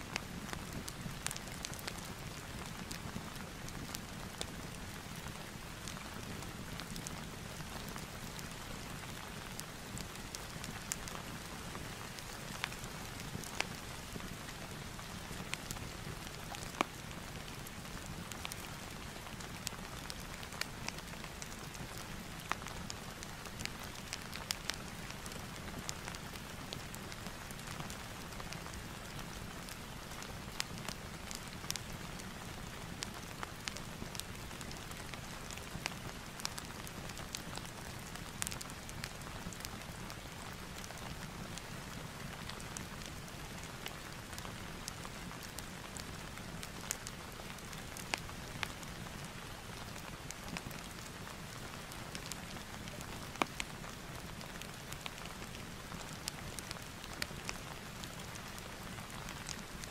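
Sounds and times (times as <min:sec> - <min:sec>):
fire crackling pops: 0:00.1 - 0:59.8.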